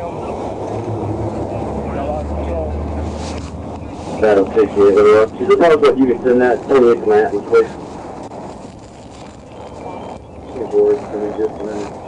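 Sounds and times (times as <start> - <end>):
background noise: 0.0 - 12.0
person's voice: 4.2 - 7.7.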